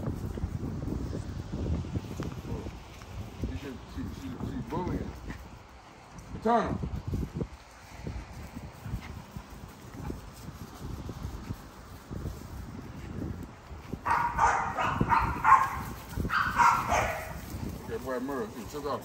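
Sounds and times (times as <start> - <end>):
puppies barking and yipping: 14.0 - 17.6.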